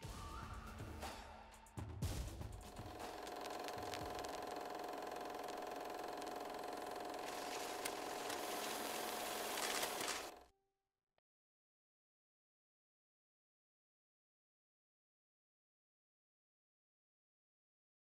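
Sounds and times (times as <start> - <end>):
film projector whirring: 2.6 - 10.4
crackling clicks: 2.7 - 10.4.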